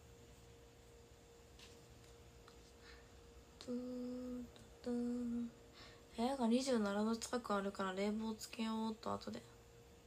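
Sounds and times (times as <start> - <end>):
woman humming held notes: 3.6 - 5.6.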